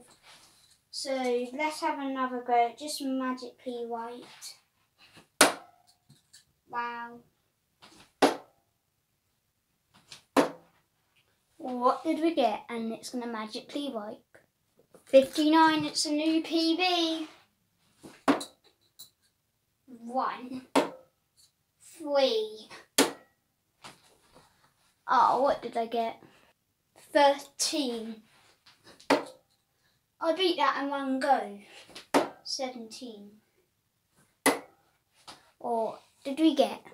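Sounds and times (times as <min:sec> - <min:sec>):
darts thudding into dartboard: 0:05.4 - 0:05.7, 0:08.2 - 0:08.5, 0:10.4 - 0:10.7, 0:18.1 - 0:18.6, 0:20.7 - 0:21.0, 0:23.0 - 0:23.3, 0:29.0 - 0:29.4, 0:32.0 - 0:32.4, 0:34.4 - 0:34.7.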